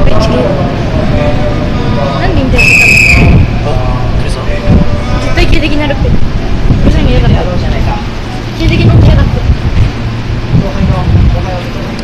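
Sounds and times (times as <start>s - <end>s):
train rumbling: 0.0s - 12.0s
voices talking: 0.0s - 12.0s
shrill whistle: 2.6s - 3.6s.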